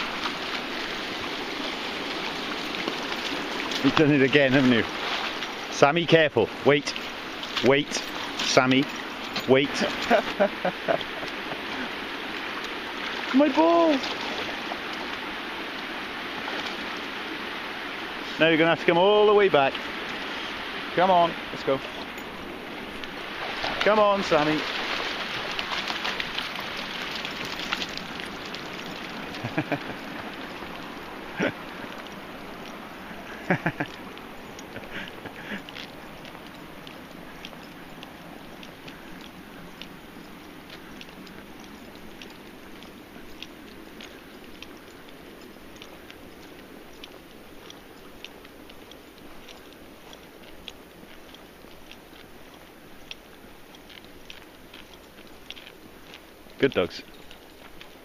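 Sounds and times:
rushing water: 0:00.0 - 0:58.0
person laughing: 0:09.8 - 0:11.9, 0:29.4 - 0:30.1, 0:31.3 - 0:31.7, 0:33.2 - 0:34.0, 0:34.7 - 0:35.8
faint ticks: 0:25.6 - 0:58.0.

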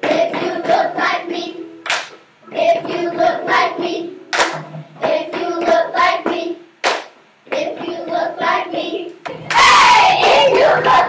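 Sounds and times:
children singing a chant: 0:00.0 - 0:01.6, 0:02.5 - 0:04.2, 0:05.0 - 0:06.6, 0:07.5 - 0:11.0
sharp hand clap: 0:01.8 - 0:02.2, 0:04.3 - 0:04.7, 0:06.8 - 0:07.7.

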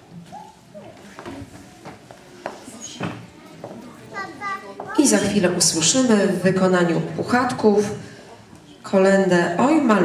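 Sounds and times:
faint children's voices: 0:00.0 - 0:05.4
high child's voice: 0:04.1 - 0:05.0.

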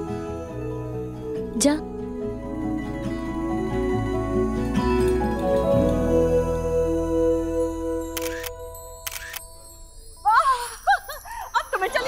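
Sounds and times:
soft background music: 0:00.0 - 0:11.1
camera shutter clicks: 0:08.2 - 0:08.5, 0:09.1 - 0:09.4.

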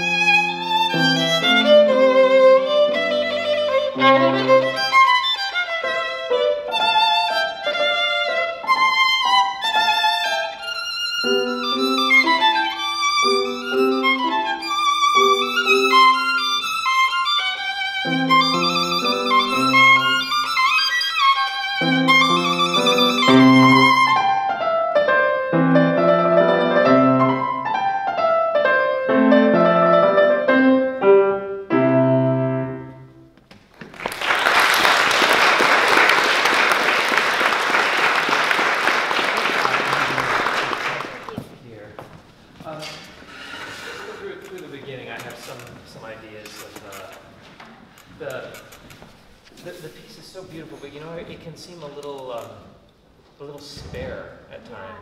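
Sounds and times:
violin and piano classical piece: 0:00.0 - 0:33.2, 0:43.3 - 0:47.3
audience applause: 0:33.8 - 0:41.5.

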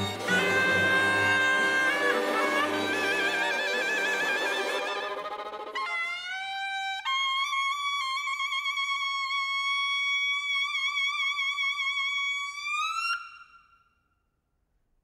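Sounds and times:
double-reed wind instrument: 0:00.0 - 0:13.9.

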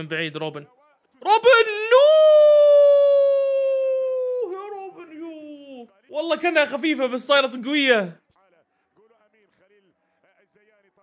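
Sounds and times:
man cheering: 0:01.3 - 0:06.7.

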